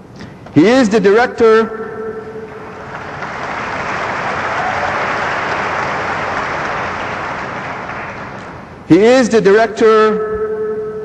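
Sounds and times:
large audience applauding: 2.6 - 8.6.

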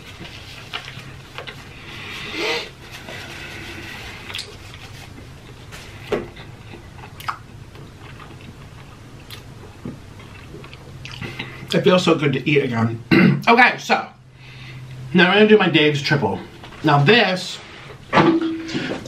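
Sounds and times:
chewing food: 6.4 - 11.5
wet mouth clicks: 7.2 - 7.4.

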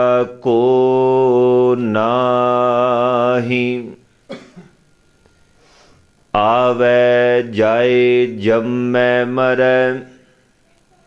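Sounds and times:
person coughing: 4.3 - 4.8.

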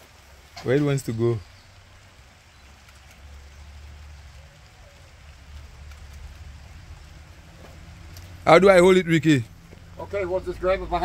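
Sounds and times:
light hiss: 0.0 - 11.0.

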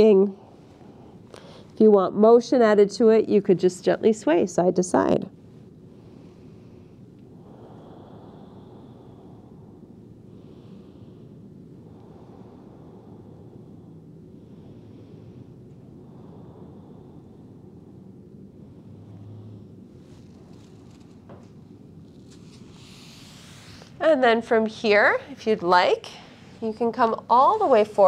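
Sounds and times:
faint soft swells: 0.0 - 28.0
steady low hum: 0.0 - 28.0.

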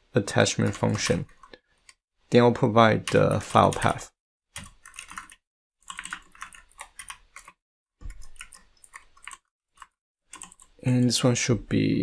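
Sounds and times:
typing on computer keyboard: 3.0 - 10.8.

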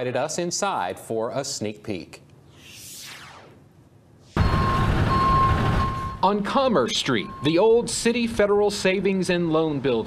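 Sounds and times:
truck engine running: 4.4 - 6.2
reversing alarm beeping: 4.4 - 8.0.

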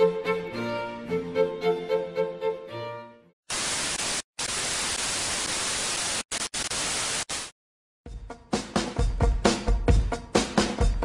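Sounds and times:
violin-led music: 0.0 - 3.3
white-noise static hiss: 3.5 - 7.5.

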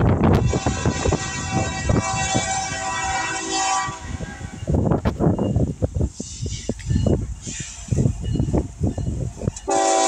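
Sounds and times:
wind buffeting microphone: 0.0 - 10.0
locomotive air horn blast: 0.3 - 4.7, 9.7 - 10.0.

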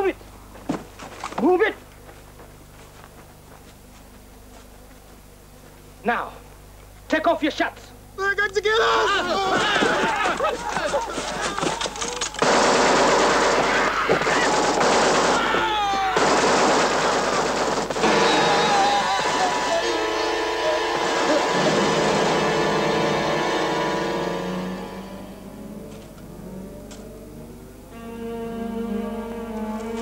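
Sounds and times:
automatic gunfire: 12.4 - 19.8
orchestral music tones: 19.7 - 30.0.

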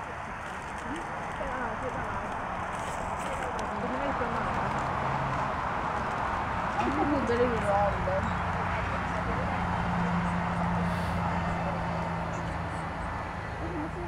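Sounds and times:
people chattering: 0.0 - 14.0.

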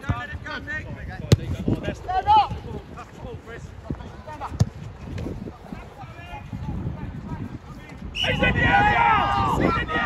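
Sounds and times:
wind on microphone: 0.0 - 10.0
football being kicked: 4.5 - 5.3.

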